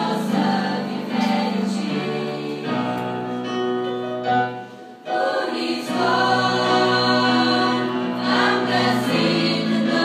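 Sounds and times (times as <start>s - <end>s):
girls' choir singing: 0.0s - 3.4s, 5.0s - 10.0s.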